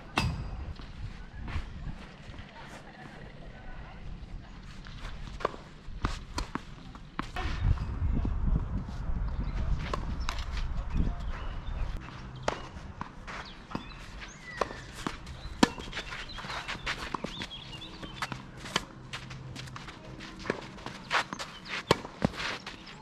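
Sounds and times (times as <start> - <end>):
footsteps sliding on clay: 13.1 - 23.0
tennis racket hitting ball: 14.6 - 16.1.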